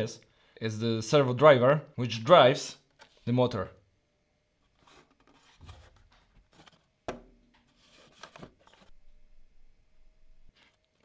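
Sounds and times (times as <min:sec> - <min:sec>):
handling rubbing and rustling: 0:04.6 - 0:09.0.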